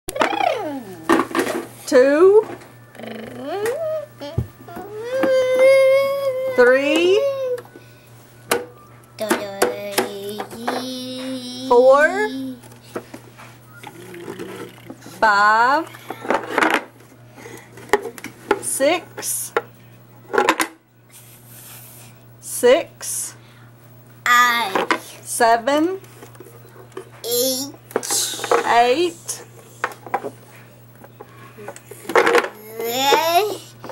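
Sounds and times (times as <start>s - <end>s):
hard objects clattering together: 31.0s - 33.2s.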